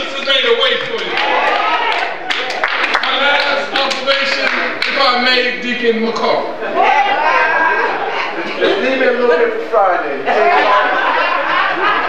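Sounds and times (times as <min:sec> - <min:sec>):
man preaching into a microphone: 0:00.0 - 0:01.2, 0:03.0 - 0:06.6.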